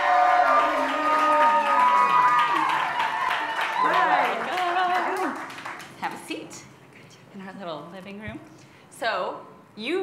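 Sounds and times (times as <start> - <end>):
audience applauding and cheering: 0.0 - 6.0.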